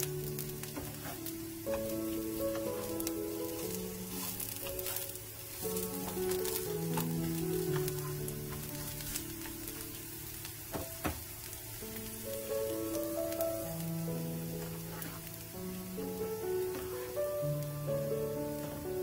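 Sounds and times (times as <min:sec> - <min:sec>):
gentle background music: 0:00.0 - 0:19.0
pancakes sizzling in oil: 0:00.0 - 0:19.0.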